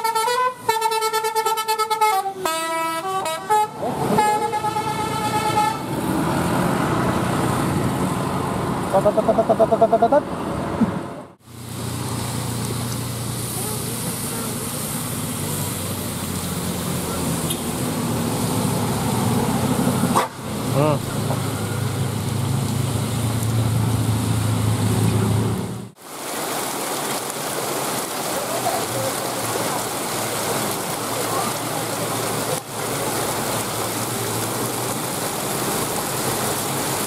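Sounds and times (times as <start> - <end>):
bus engines droning: 0.0 - 26.0
heavy rain pouring: 0.0 - 37.0
road noise: 0.0 - 37.0
water running off roof: 11.4 - 37.0.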